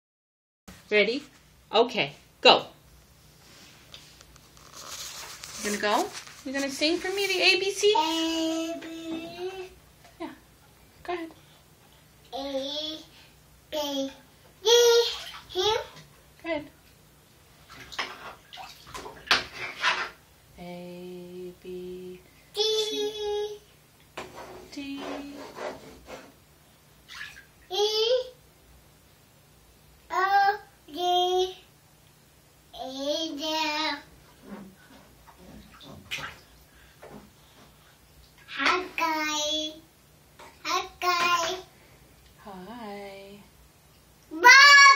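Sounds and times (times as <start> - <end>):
toddler singing: 7.9 - 9.8, 40.7 - 41.7, 44.3 - 44.9
bath water splashing: 14.9 - 16.1, 17.6 - 20.2, 27.0 - 27.7, 35.1 - 37.4.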